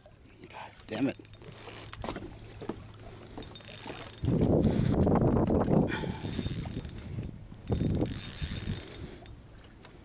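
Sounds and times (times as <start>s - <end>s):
water lapping around boat hull: 0.0s - 10.0s
wind on microphone: 3.9s - 9.4s.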